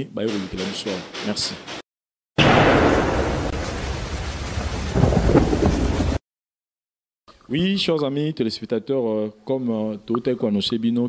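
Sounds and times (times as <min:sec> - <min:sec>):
rumbling thunder-like sound effect: 0:02.4 - 0:06.2.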